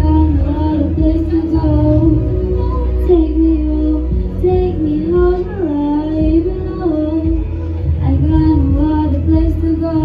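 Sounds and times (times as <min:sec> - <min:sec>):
backing music: 0:00.0 - 0:10.0
girl singing into a microphone: 0:00.0 - 0:10.0.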